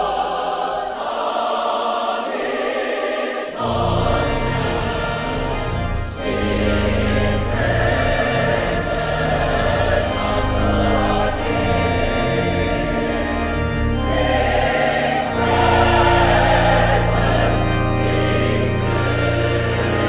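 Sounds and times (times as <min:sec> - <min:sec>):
choir singing: 0:00.0 - 0:20.0
pipe organ: 0:00.0 - 0:20.0.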